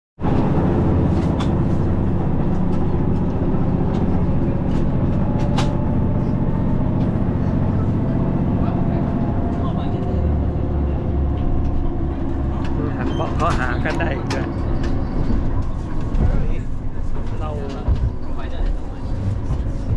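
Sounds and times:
train rumbling: 0:00.2 - 0:19.9.

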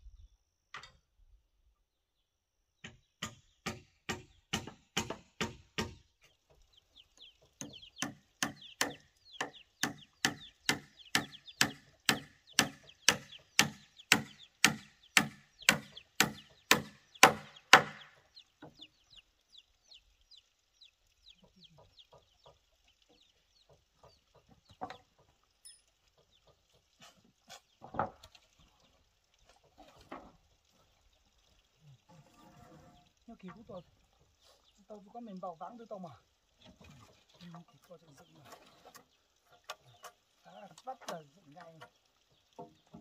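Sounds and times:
hammer blows on timber: 0:07.6 - 0:18.1
wooden knocks: 0:23.6 - 0:25.4, 0:27.8 - 0:28.4.

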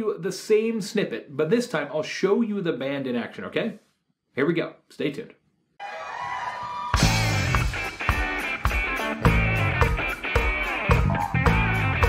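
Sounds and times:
funk band music: 0:06.9 - 0:12.0.

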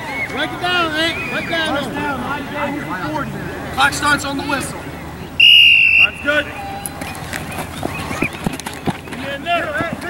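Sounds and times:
men shouting: 0:00.0 - 0:04.8.

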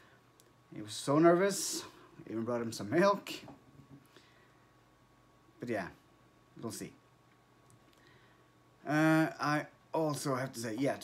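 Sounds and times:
man speaking: 0:00.7 - 0:03.6, 0:05.6 - 0:07.0, 0:08.8 - 0:11.0.

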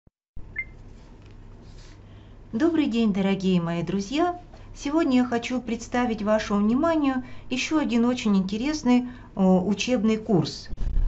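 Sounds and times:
steady low hum: 0:00.5 - 0:11.0.

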